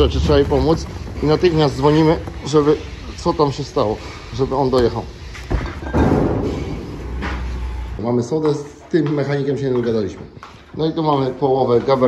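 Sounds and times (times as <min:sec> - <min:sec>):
low steady rumble: 0:00.0 - 0:03.5.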